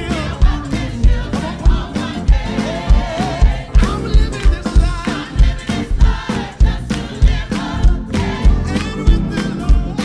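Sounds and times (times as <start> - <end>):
gospel choir singing: 0.0 - 10.0
steady low beat: 0.0 - 10.0.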